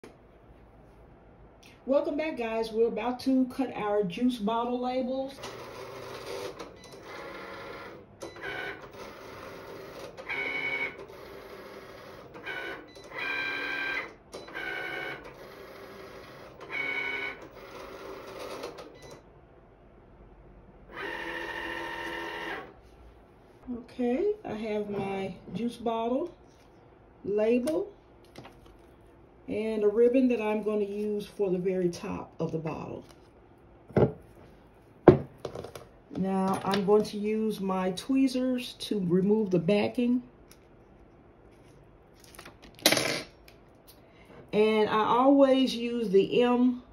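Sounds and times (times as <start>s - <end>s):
objects knocking on wooden table: 33.9s - 34.2s, 35.0s - 35.9s.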